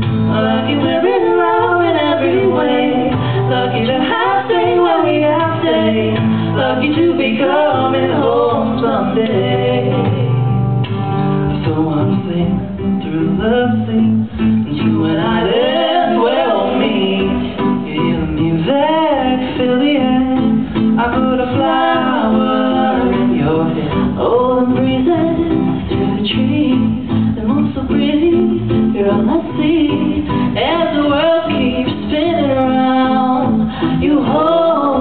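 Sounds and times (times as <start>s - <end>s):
woman singing: 0.0s - 10.8s, 11.4s - 35.0s
acoustic guitar strummed: 0.0s - 35.0s
man singing: 11.5s - 35.0s.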